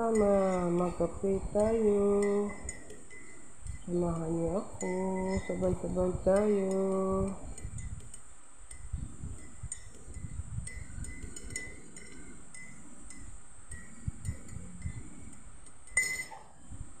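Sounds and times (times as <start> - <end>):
teaspoon clinking in a ceramic mug: 1.5 - 5.7, 6.3 - 16.4.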